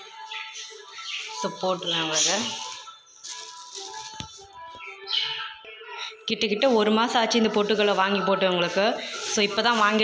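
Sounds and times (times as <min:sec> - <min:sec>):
background music: 0:00.0 - 0:10.0
plastic bag crinkling: 0:02.2 - 0:04.6.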